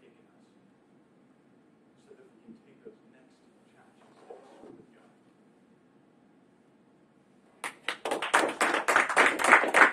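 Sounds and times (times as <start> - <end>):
small group clapping: 7.6 - 9.9.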